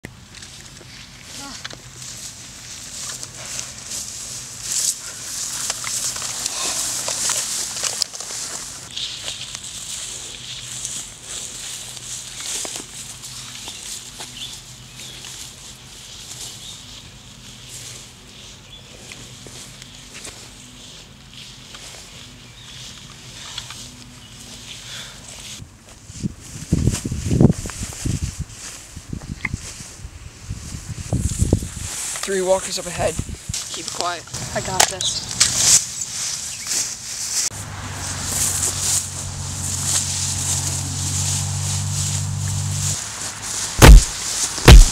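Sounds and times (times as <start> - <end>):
grass rustling: 0.1 - 44.9.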